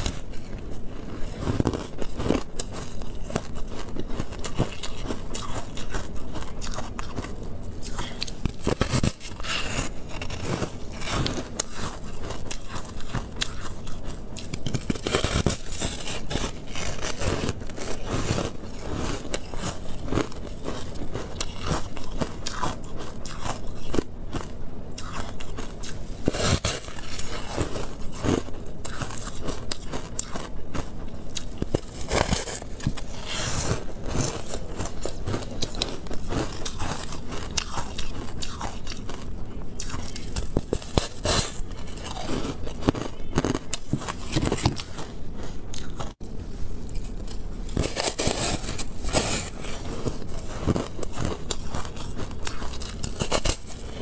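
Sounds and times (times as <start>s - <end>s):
chewing crunchy ice: 0.0s - 46.2s, 46.8s - 54.0s.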